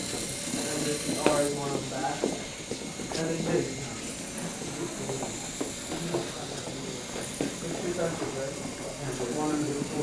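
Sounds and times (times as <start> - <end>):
indistinct background talk: 0.0 - 10.0.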